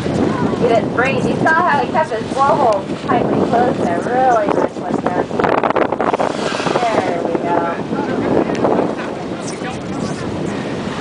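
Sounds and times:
people's voices: 0:00.0 - 0:05.4, 0:06.5 - 0:10.7
boat on open water: 0:00.0 - 0:11.0
wind buffeting microphone: 0:00.0 - 0:11.0.

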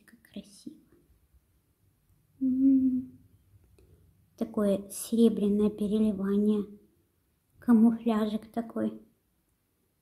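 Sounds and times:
woman humming: 0:02.4 - 0:03.2.

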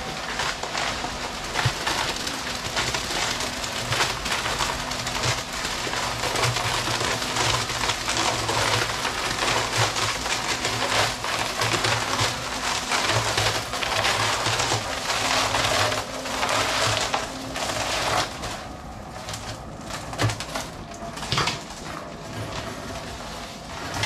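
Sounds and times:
concrete churning in mixer drum: 0:00.0 - 0:24.0.

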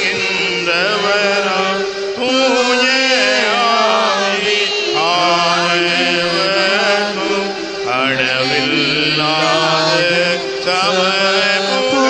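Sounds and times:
held accompanying notes: 0:00.0 - 0:12.0
person singing a hymn: 0:00.0 - 0:12.0.

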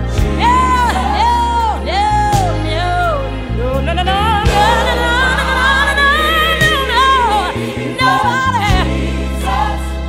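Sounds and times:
gospel singing voices: 0:00.0 - 0:10.0
steady bass line: 0:00.0 - 0:10.0.

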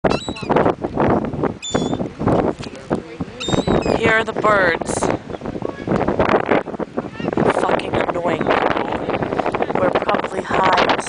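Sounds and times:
seagulls calling: 0:00.0 - 0:00.6, 0:01.6 - 0:02.1, 0:03.4 - 0:04.1.

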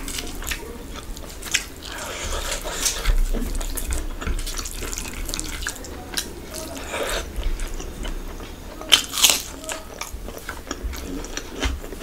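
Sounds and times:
fingers squishing rice and gravy: 0:00.0 - 0:12.0.

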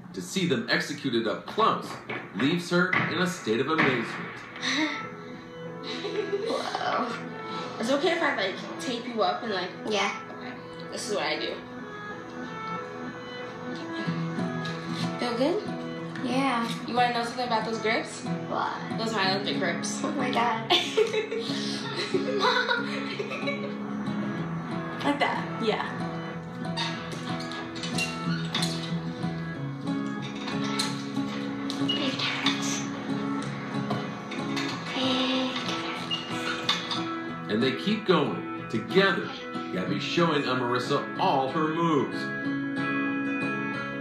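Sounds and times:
soft background music: 0:00.0 - 0:44.0
guitar chords: 0:01.9 - 0:44.0.

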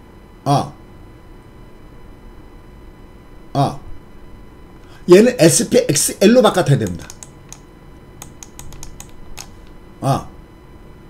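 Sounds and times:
light clicks and taps: 0:06.8 - 0:07.6, 0:08.2 - 0:09.8.

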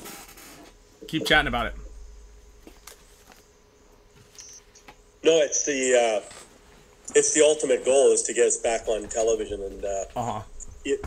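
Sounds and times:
faint high hiss: 0:00.0 - 0:11.0
faint steady hum: 0:00.0 - 0:11.0.

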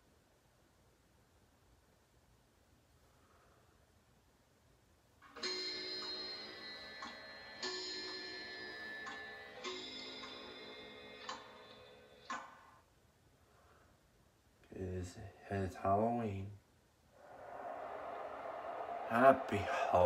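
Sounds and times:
clock chimes striking: 0:05.4 - 0:11.9.

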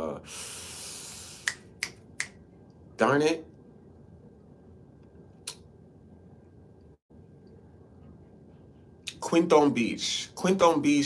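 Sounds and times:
soft breathy hiss: 0:00.0 - 0:01.6
finger snaps: 0:01.4 - 0:02.4, 0:05.4 - 0:05.7.

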